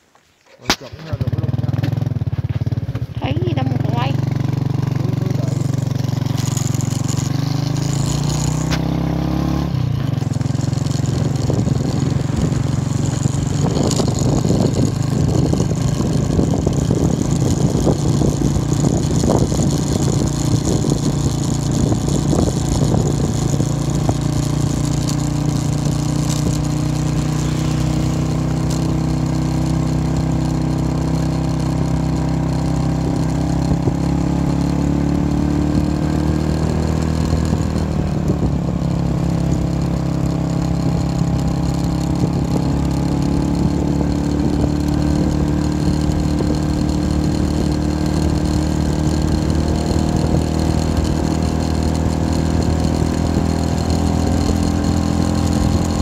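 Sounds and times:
motorbike engine running: 0:00.9 - 0:56.0.

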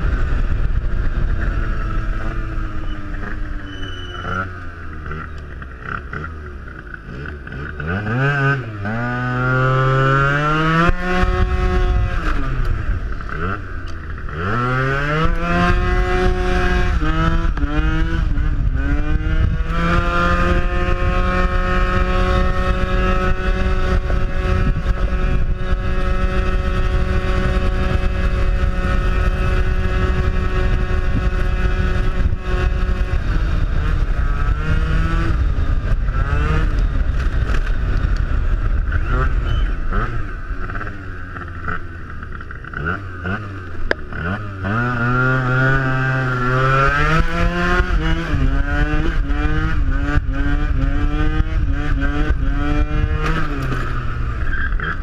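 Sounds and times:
wind rush on microphone: 0:00.0 - 0:03.5, 0:10.1 - 0:13.6, 0:14.4 - 0:41.0, 0:44.2 - 0:55.0
scooter engine revving: 0:00.0 - 0:55.0.

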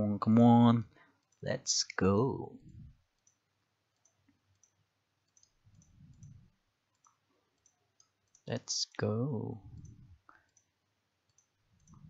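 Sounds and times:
faint low sound: 0:02.0 - 0:03.2
computer mouse clicks: 0:03.1 - 0:08.6, 0:09.7 - 0:12.0.

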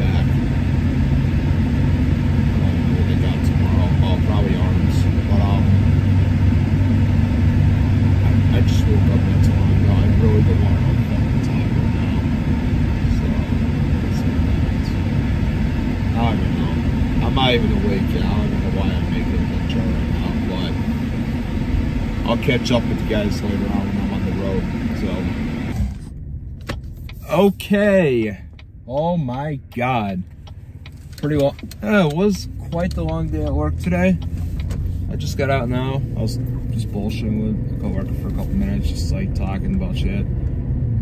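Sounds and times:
car cabin road rumble: 0:00.0 - 0:41.0.

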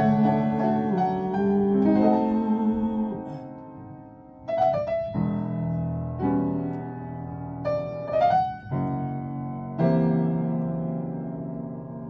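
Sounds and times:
person singing: 0:00.0 - 0:03.6
piano chords: 0:00.0 - 0:12.0.

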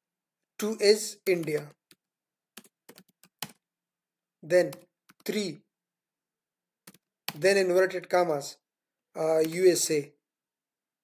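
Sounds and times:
computer keyboard typing: 0:01.2 - 0:03.6, 0:04.7 - 0:05.4, 0:06.8 - 0:07.5, 0:09.3 - 0:09.8.

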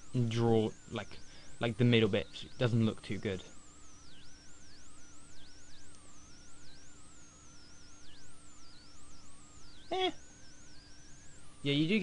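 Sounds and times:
low steady hum: 0:00.0 - 0:12.0
wavering whistling tone: 0:00.0 - 0:12.0.

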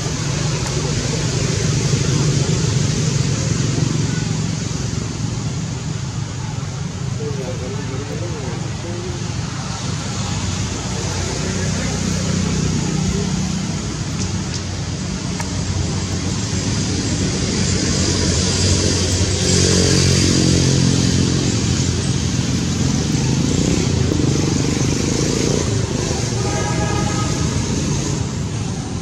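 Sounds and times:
vehicle engine running: 0:00.0 - 0:29.0.

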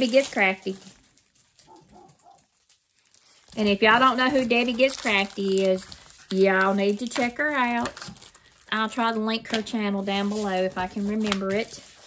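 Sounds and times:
faint muffled dog barking: 0:01.7 - 0:02.5.

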